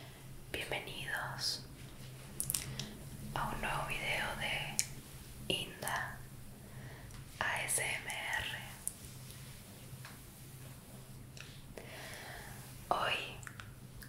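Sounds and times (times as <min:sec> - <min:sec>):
soft whispering: 0:00.0 - 0:09.7, 0:11.4 - 0:13.7
low hum: 0:00.0 - 0:14.0.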